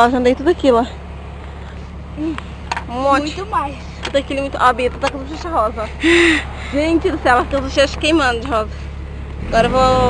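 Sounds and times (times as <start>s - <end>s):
woman speaking: 0.0s - 1.0s, 2.2s - 8.8s, 9.5s - 10.0s
low outdoor rumble: 0.0s - 10.0s.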